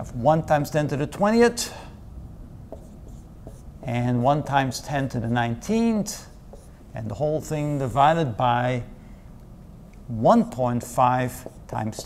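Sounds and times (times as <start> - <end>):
marker writing on whiteboard: 2.7 - 8.0, 10.7 - 12.0.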